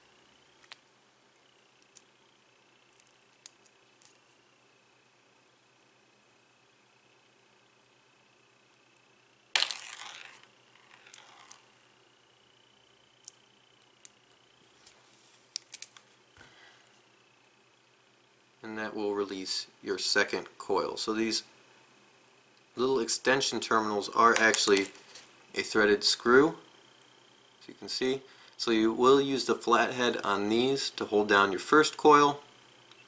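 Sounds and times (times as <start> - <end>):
faint high whine: 0.0 - 33.0.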